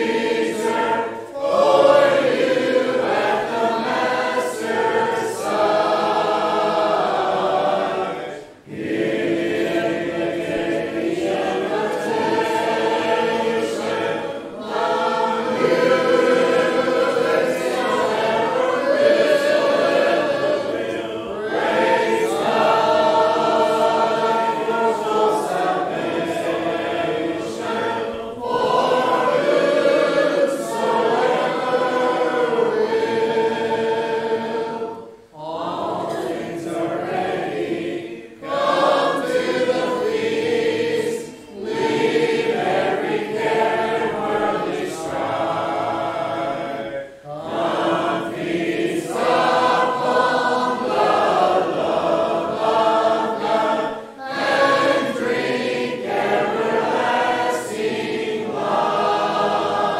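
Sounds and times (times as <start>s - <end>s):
congregation singing a hymn: 0.0s - 59.9s.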